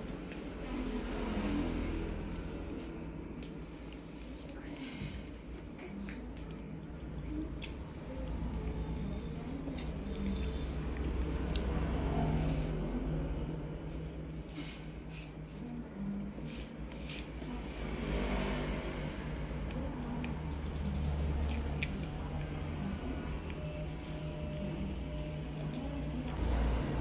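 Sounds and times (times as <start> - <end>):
wet chewing sounds: 0.0 - 12.4, 19.7 - 26.4
low steady hum: 0.0 - 27.0.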